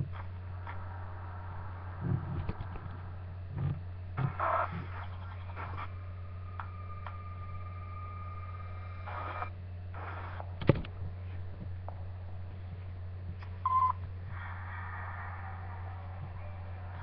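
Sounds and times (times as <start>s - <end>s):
steady high tone: 0.0s - 9.6s
low electrical hum: 0.0s - 17.0s.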